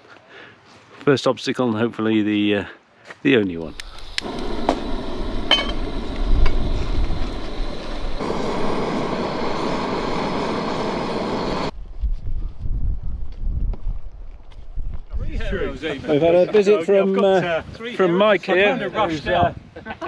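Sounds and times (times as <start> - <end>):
camping stove hissing: 3.6 - 11.7
sharp clicks of stove lighting: 3.7 - 11.7
wind rumble on microphone: 3.7 - 15.9.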